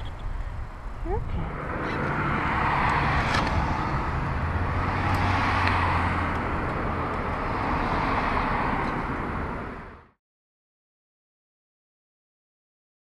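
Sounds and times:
low engine drone: 0.0 - 5.3
passing vehicles rushing: 0.0 - 10.2.

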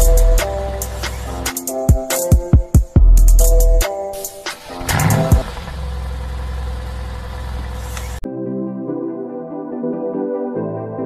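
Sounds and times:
car engine starting and revving: 0.0 - 1.8, 4.2 - 8.2
car engine idling: 0.0 - 2.1, 3.0 - 8.2.

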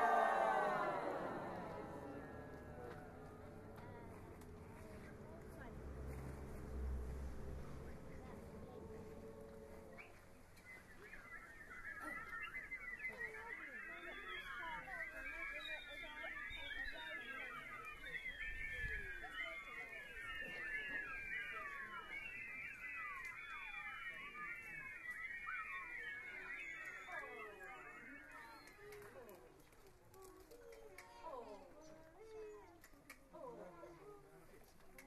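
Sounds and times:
choir making high sliding calls: 0.0 - 9.3, 10.9 - 29.1.

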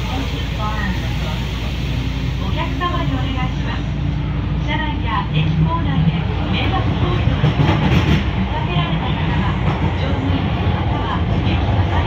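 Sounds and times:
station announcement voice: 0.0 - 7.7, 8.3 - 12.0
subway train rumbling: 0.0 - 12.0.

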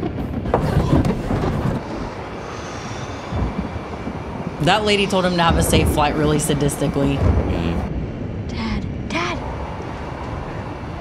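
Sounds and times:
aircraft cabin rumble: 0.0 - 11.0.

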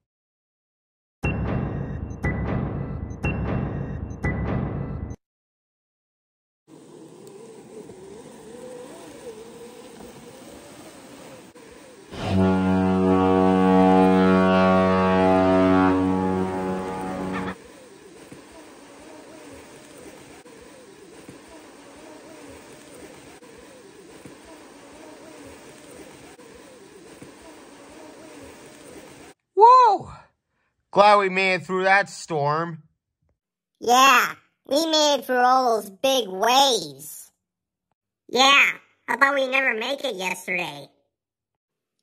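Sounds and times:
deep ship's horn: 12.1 - 17.6.

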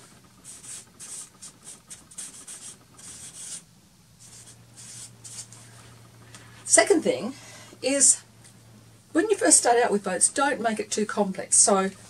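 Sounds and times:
marker pen writing on a board: 0.4 - 3.6.

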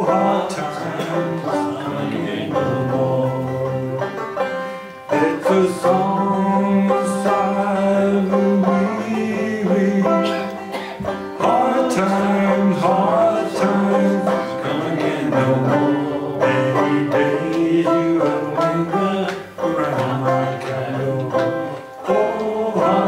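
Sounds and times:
banjo plucking: 0.0 - 23.0
man singing folk song: 0.0 - 23.0.

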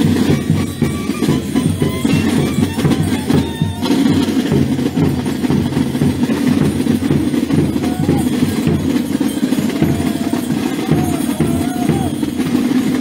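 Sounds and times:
drum band playing: 0.0 - 13.0.

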